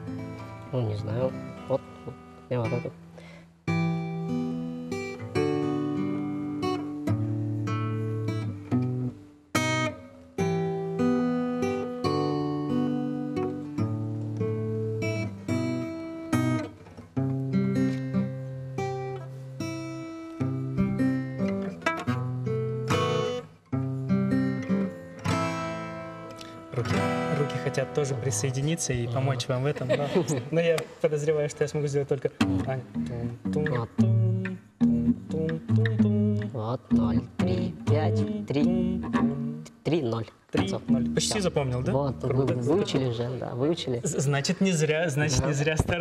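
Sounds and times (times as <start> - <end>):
acoustic guitars playing: 0.0 - 46.0.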